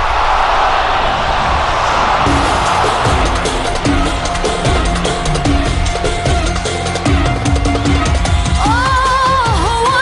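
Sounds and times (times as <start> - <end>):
loud rushing noise: 0.0 - 8.4
deep rumble: 1.0 - 8.6.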